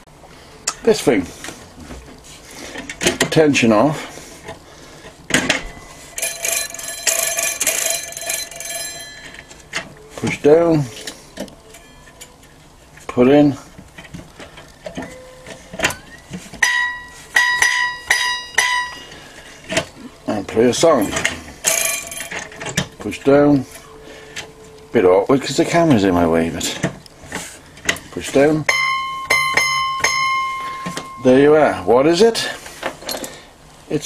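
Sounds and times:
faint steady tone: 0:02.8 - 0:27.2, 0:27.8 - 0:33.6
metallic rasping with squeaky ring: 0:15.0 - 0:19.1.

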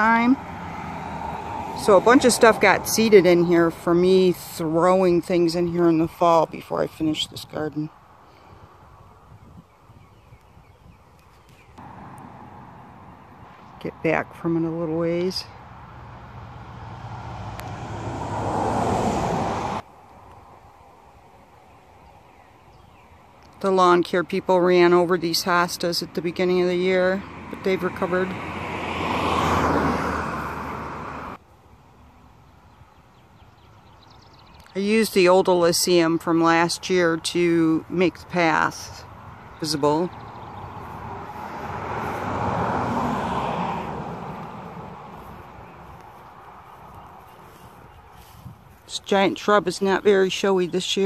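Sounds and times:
vehicle passing: 0:00.0 - 0:06.6, 0:11.8 - 0:19.9, 0:24.9 - 0:31.4, 0:36.6 - 0:51.0
faint outdoor background: 0:00.0 - 0:51.0.

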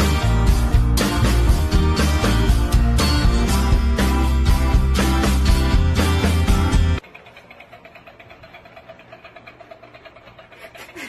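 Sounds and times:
small motor whirring and ticking: 0:07.0 - 0:11.0.

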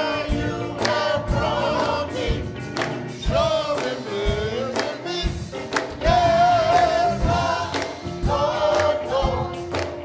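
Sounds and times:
gospel choir singing with music: 0:00.0 - 0:10.0.

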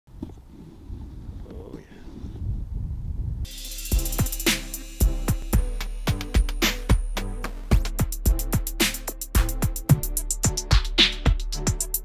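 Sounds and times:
low wind rumble: 0:00.1 - 0:03.5
drum hit: 0:03.5 - 0:11.9
intro music with steady tones: 0:03.5 - 0:12.0.

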